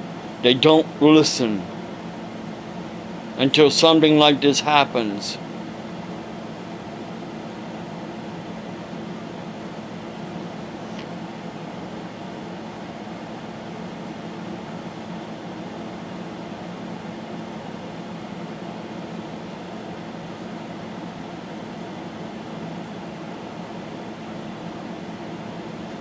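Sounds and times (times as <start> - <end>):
low machine hum: 0.0 - 26.0.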